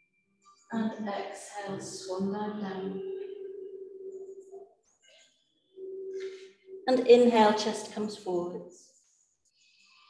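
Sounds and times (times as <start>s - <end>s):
person humming a tone: 1.7s - 4.5s.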